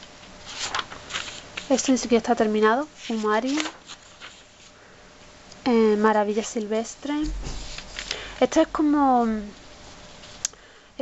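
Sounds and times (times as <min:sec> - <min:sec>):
paper sheets rustling: 0:00.2 - 0:02.3, 0:03.0 - 0:04.8, 0:07.3 - 0:08.3
woman speaking: 0:01.7 - 0:03.7, 0:05.7 - 0:07.5, 0:08.4 - 0:09.6.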